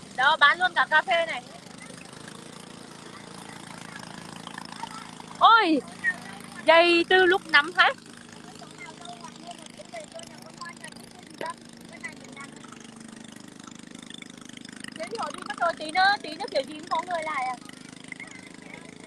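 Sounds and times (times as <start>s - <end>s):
boat engine low hum: 0.0s - 19.0s.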